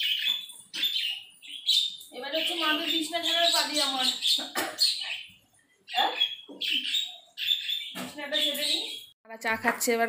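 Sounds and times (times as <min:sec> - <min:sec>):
birds chirping: 0:00.0 - 0:09.2.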